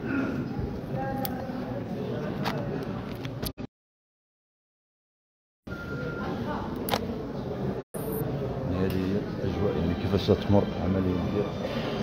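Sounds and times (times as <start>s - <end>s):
murmur of crowd talking: 0.0s - 3.5s, 5.7s - 12.0s.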